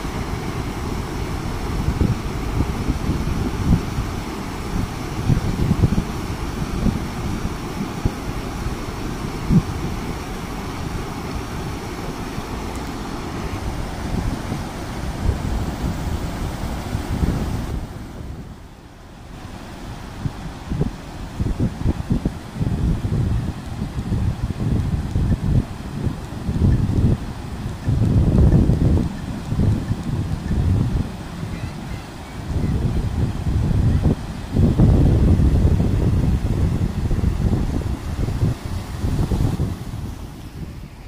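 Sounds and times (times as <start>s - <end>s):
wind buffeting microphone: 0.0s - 18.7s, 19.3s - 41.0s
water rushing over rocks: 0.0s - 41.0s.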